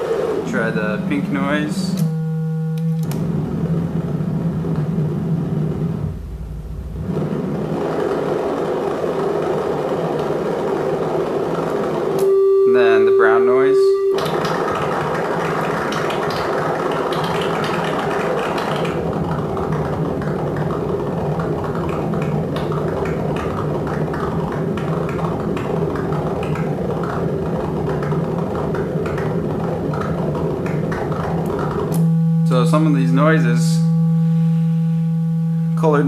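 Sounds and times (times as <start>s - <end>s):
low buzzy wavering oscillator tone: 0.0s - 36.0s.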